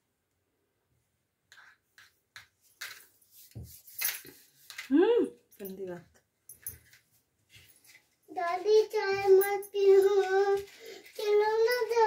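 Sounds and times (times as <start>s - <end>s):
young child singing: 8.3s - 12.0s.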